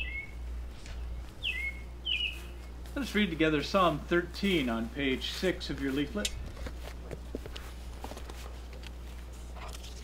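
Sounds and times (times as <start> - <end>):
steady low rumble: 0.0 - 10.0
paper rustling: 5.8 - 10.0.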